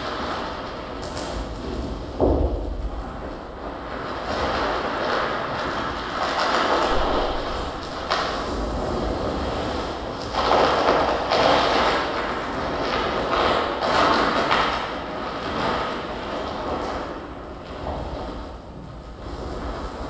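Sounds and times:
harsh noise wall: 0:00.0 - 0:20.0
low rumble: 0:06.5 - 0:10.6.

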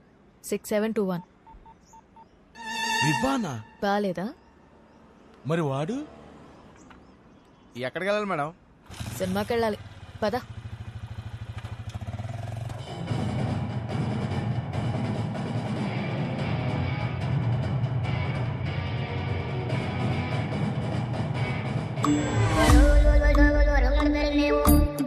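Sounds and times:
film music: 0:02.6 - 0:04.0, 0:12.8 - 0:25.0
motorcycle engine running: 0:08.9 - 0:15.7.

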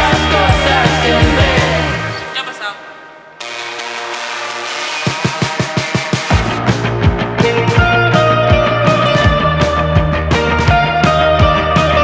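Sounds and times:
rock band music: 0:00.0 - 0:12.0.

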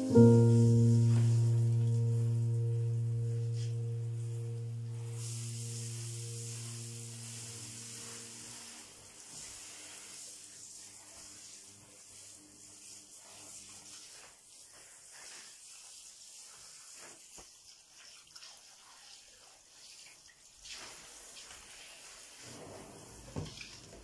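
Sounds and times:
piano music: 0:00.0 - 0:08.8
shower spraying into bathtub: 0:00.0 - 0:24.0.

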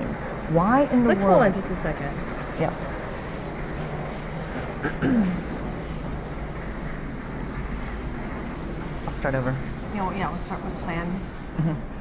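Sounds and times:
woman clearing her throat: 0:04.8 - 0:05.5.

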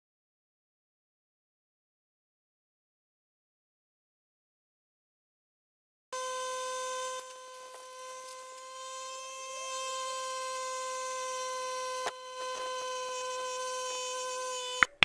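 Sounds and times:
steady buzzing tone: 0:06.2 - 0:15.0.

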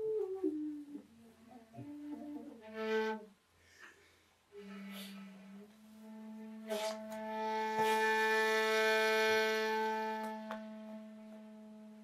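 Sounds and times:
bamboo flute long note: 0:00.0 - 0:03.3, 0:04.5 - 0:12.0.

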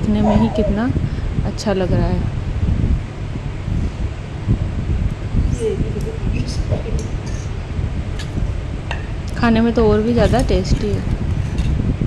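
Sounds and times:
room fan rumbling: 0:00.0 - 0:12.0.

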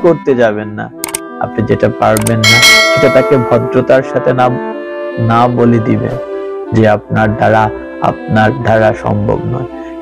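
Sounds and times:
man speaking: 0:00.0 - 0:04.6
background music: 0:00.0 - 0:10.0
bright bell ding: 0:02.4 - 0:03.8.

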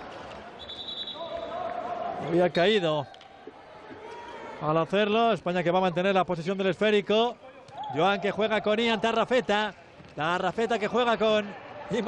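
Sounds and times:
low crowd noise: 0:00.0 - 0:12.0.

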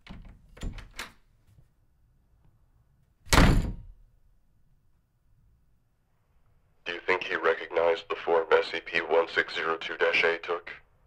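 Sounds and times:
door shutting with thud: 0:00.0 - 0:01.1, 0:03.3 - 0:04.0.

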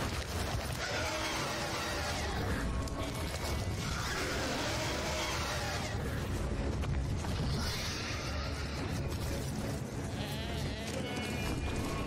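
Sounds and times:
goats bleating: 0:00.6 - 0:06.4, 0:07.5 - 0:12.0.

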